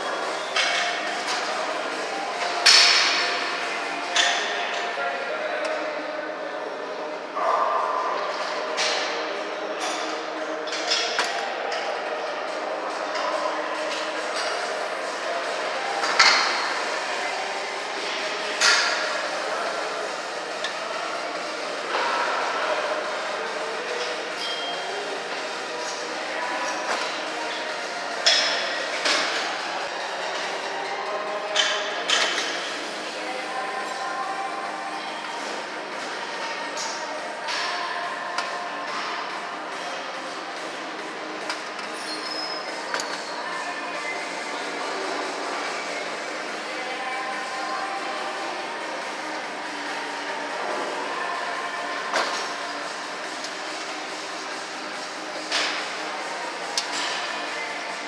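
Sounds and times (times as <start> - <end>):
gym background noise: 0.0 - 58.0.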